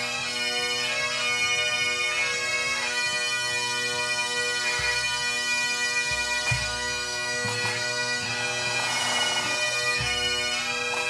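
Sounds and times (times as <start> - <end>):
bagpipes playing melody: 0.0 - 11.0
drums beating: 6.1 - 11.0.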